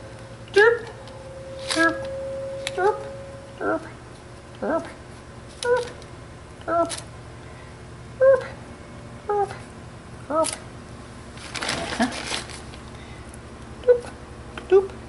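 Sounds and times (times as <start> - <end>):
paper bag rustling: 11.3 - 13.0.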